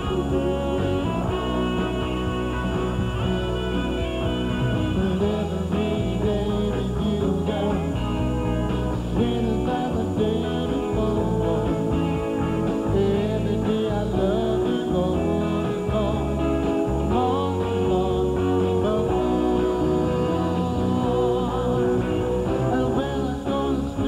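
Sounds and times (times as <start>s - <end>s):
electric guitar: 0.0s - 24.0s
keyboards: 0.0s - 24.0s
live band playing pop-rock: 0.0s - 24.0s
man singing into microphone: 5.0s - 8.2s, 9.2s - 12.1s, 12.7s - 24.0s.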